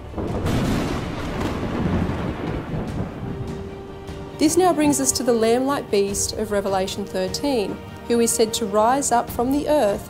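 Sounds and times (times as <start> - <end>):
rolling thunder rumble: 0.0 - 7.8.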